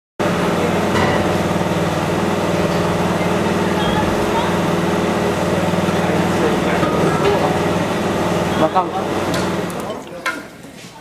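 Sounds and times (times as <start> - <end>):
engine running steadily: 0.2 - 10.0.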